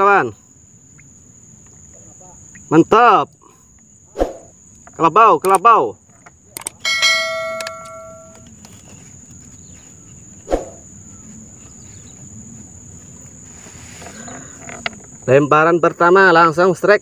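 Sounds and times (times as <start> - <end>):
faint high insect whine: 0.0 - 17.0
notification bell ding: 6.9 - 8.4.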